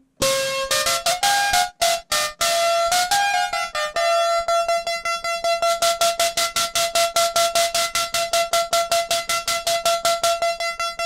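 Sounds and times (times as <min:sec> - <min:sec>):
buzzy synthesizer note repeating: 0:00.2 - 0:11.0.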